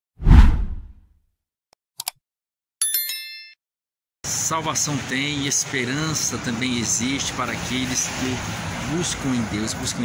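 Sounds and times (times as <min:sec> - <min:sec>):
whoosh with deep boom: 0:00.2 - 0:01.0.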